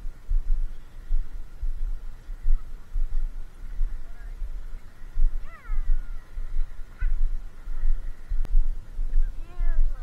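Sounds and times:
wind buffeting microphone: 0.0s - 10.0s
bird crying: 5.4s - 7.2s.

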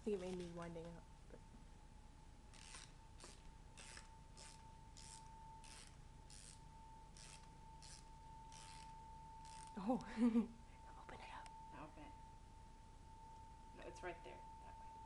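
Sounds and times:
music box winding ratchet clicks: 7.2s - 9.7s.

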